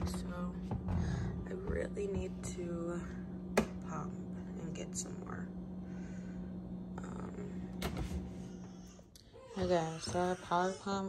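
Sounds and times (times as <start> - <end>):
refrigerator humming: 0.0 - 11.0.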